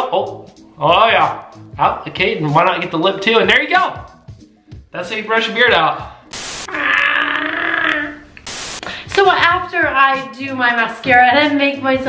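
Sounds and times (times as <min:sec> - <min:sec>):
static hiss: 0:06.3 - 0:06.7, 0:08.4 - 0:09.0
vocal groan: 0:06.7 - 0:08.3.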